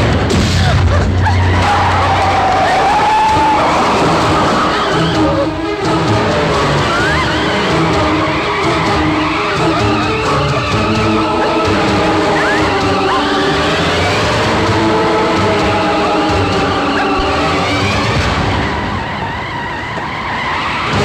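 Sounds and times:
action film score: 0:00.0 - 0:21.0
vehicle skidding on dirt: 0:00.8 - 0:21.0.

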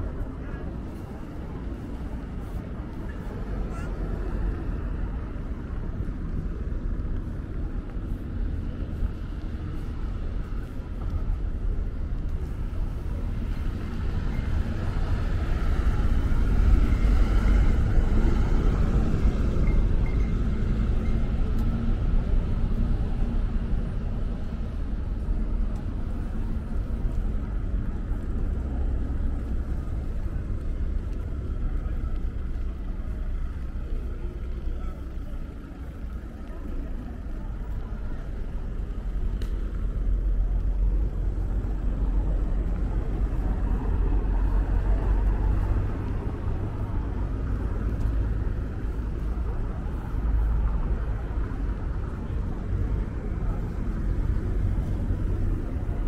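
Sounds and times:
street traffic rumble: 0:00.0 - 0:56.0.

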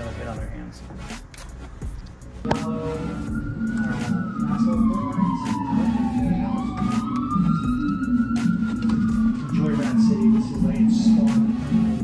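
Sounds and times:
background music: 0:00.0 - 0:12.0
emergency siren wailing: 0:02.5 - 0:12.0.

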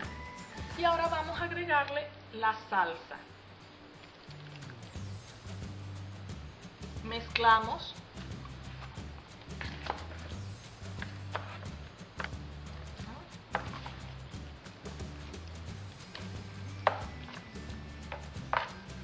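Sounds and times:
background music with bass: 0:00.0 - 0:01.7, 0:03.5 - 0:19.0
utensils knocking plastic bowl: 0:16.2 - 0:17.4, 0:18.1 - 0:18.8.

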